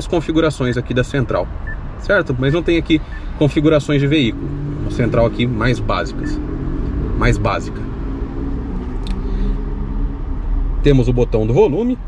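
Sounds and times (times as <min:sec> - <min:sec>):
man speaking: 0:00.0 - 0:06.4, 0:07.2 - 0:07.8
low rumble inside car: 0:00.0 - 0:12.0.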